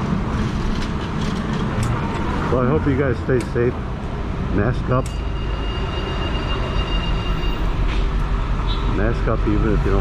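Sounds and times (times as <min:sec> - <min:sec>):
motorcycle engine and road rumble: 0:00.0 - 0:05.2
high-pitched squeal: 0:05.2 - 0:09.0.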